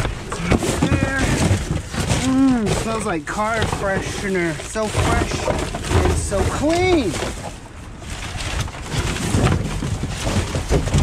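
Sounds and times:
bags and boxes rustling: 0:00.0 - 0:11.0.

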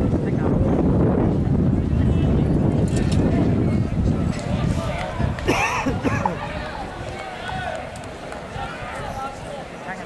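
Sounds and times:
runners' footsteps on a track: 0:00.0 - 0:10.0.

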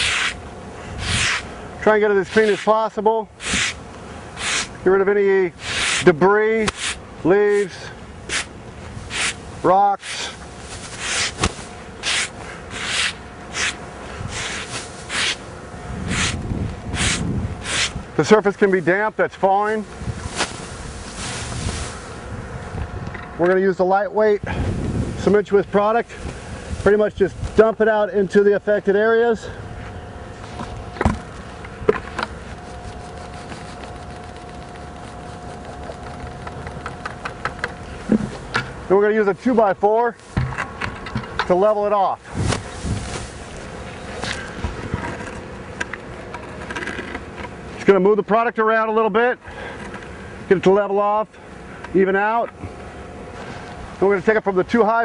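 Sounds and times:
broom sweeping a roof: 0:00.0 - 0:01.5, 0:02.1 - 0:03.8, 0:04.4 - 0:04.8, 0:05.5 - 0:18.9, 0:19.6 - 0:22.3, 0:32.4 - 0:36.0, 0:42.1 - 0:44.7
mechanical hum: 0:00.0 - 0:55.0.

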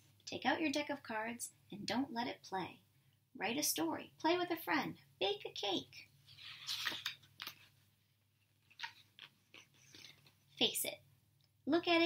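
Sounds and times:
book page turning: 0:06.3 - 0:07.8, 0:08.6 - 0:10.3.

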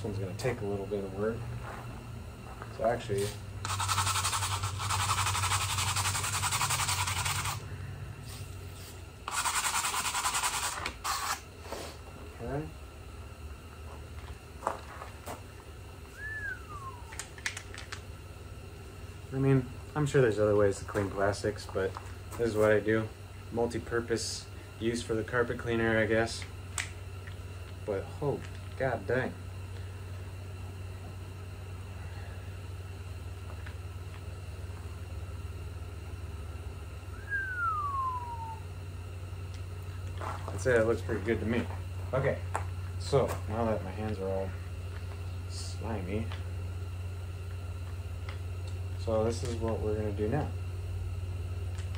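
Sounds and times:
steady low hum: 0:00.0 - 0:51.9
high whistle-like falling tone: 0:16.1 - 0:17.2, 0:37.1 - 0:38.8.

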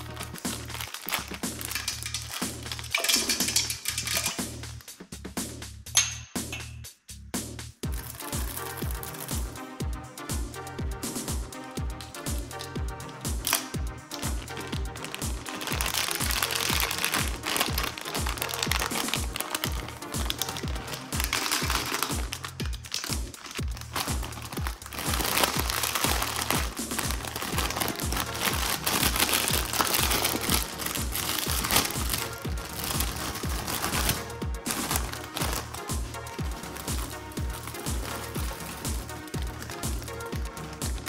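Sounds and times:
plastic snack bag crinkling: 0:00.0 - 0:04.6, 0:08.0 - 0:09.5, 0:12.5 - 0:41.0
electronic dance music: 0:07.8 - 0:41.0.

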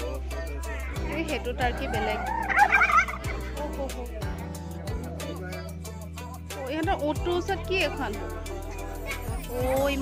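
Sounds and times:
turkey gobbling: 0:01.9 - 0:03.4.

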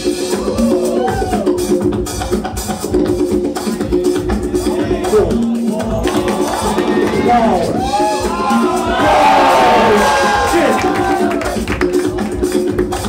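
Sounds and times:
break-beat music: 0:00.0 - 0:13.0
crowd whooping and cheering: 0:00.1 - 0:01.8, 0:05.7 - 0:11.8.

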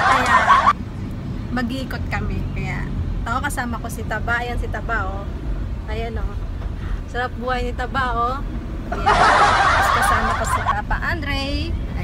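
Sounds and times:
van rumble: 0:00.0 - 0:12.0.

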